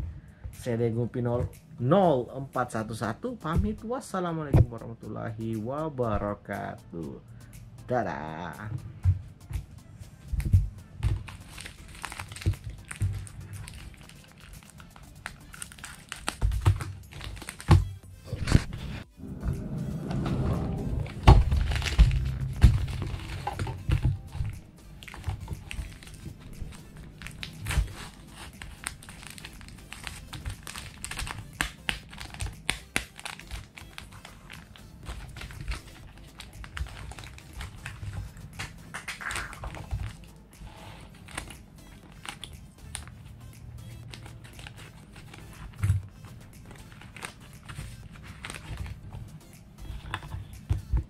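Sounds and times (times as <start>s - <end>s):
background music: 0.0s - 51.0s
plastic bag crinkling: 11.2s - 17.7s, 21.0s - 40.2s, 44.1s - 49.1s.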